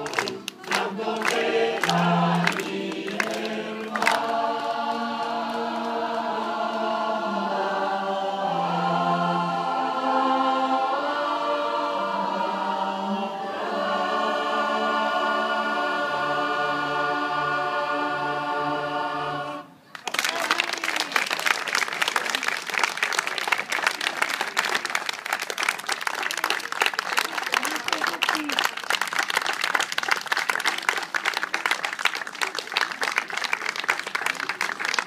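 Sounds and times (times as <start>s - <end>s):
audience applause: 0.0s - 6.2s, 19.9s - 35.0s
choir singing: 0.0s - 19.8s
voices: 19.9s - 28.8s.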